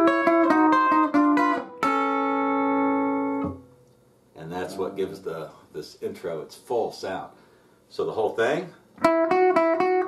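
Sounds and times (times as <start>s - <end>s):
clean electric guitar: 0.0s - 4.0s, 9.0s - 10.0s.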